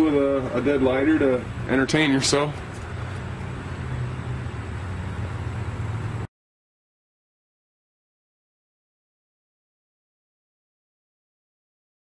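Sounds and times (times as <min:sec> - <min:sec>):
low mechanical hum: 0:00.0 - 0:06.3.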